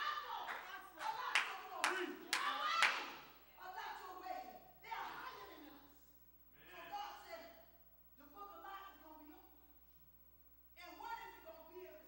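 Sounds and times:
sharp hand claps: 0.4 - 3.2.

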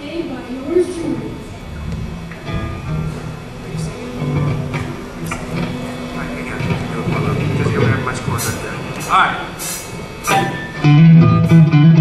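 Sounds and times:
electric guitar notes: 0.0 - 12.0
voices in a hall: 0.0 - 12.0
bass guitar notes: 0.9 - 8.1, 10.4 - 12.0.

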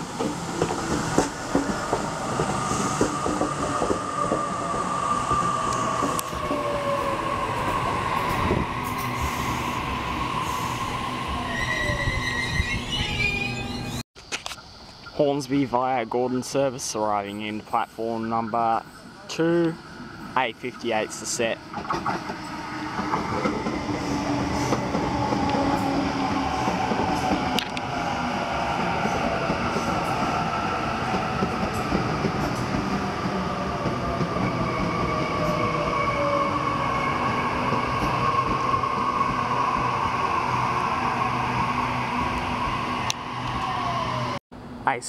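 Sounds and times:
train wheel and rail noise: 0.0 - 15.2, 16.0 - 45.0.

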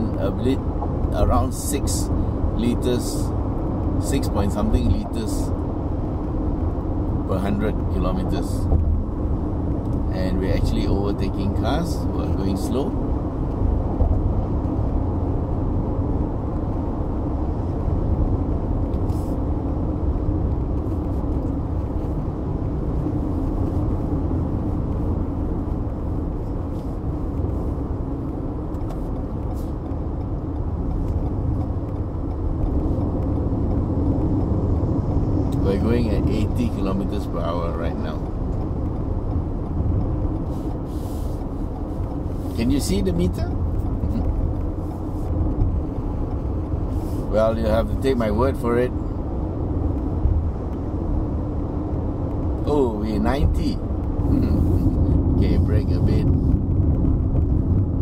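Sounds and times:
road and engine noise in car cabin: 0.0 - 58.0.

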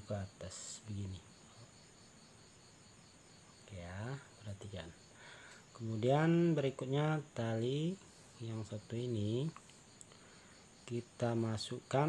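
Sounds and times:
person speaking: 0.0 - 1.8, 3.6 - 9.7, 10.8 - 12.0
crickets chirping: 0.0 - 12.0.

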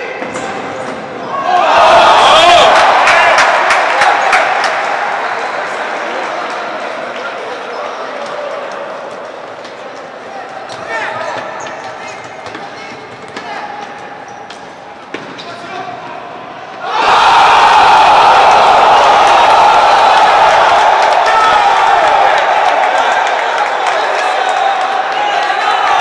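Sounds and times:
crowd cheering and shouting: 1.2 - 9.3, 16.5 - 26.0
players shouting: 1.2 - 14.2, 15.6 - 26.0.

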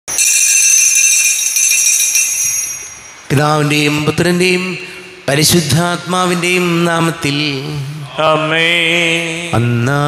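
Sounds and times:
small metal bells jingling: 0.1 - 3.3.

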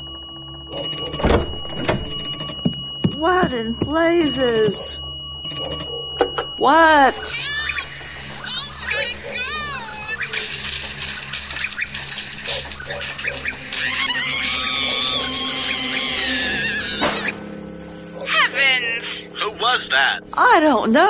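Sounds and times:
low droning music: 12.6 - 21.0
people crying out: 13.6 - 17.4
long high scream: 13.8 - 17.1.

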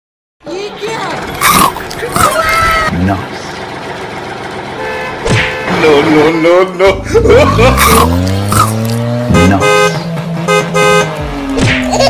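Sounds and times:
car horn honks: 4.7 - 6.3, 8.1 - 11.4.

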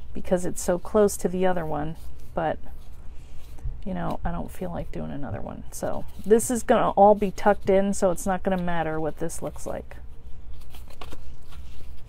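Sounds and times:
steady low hum: 0.0 - 12.0
cardstock being folded: 0.1 - 12.0.

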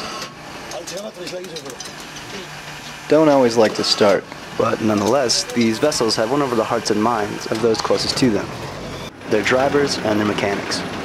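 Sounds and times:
diesel bus engine running: 0.0 - 11.0
man's voice: 3.1 - 8.5.

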